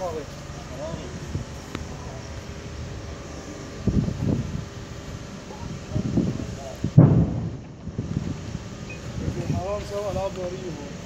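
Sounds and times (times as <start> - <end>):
low rumbling noise: 0.0 - 11.0
heavy low thump: 6.8 - 8.4.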